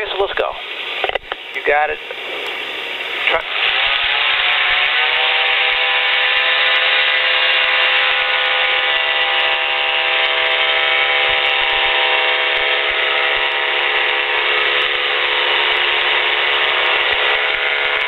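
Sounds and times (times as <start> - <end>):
engine and propeller through intercom: 0.0 - 7.9.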